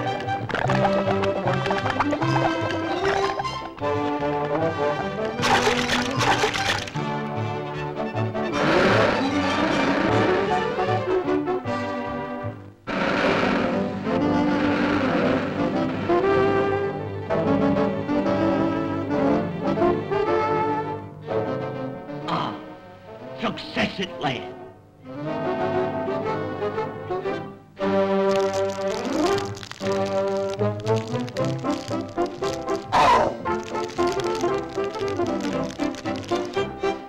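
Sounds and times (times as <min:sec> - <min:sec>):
orchestral cartoon music with brass: 0:00.0 - 0:37.0
bursts of hissing noise: 0:28.3 - 0:37.0.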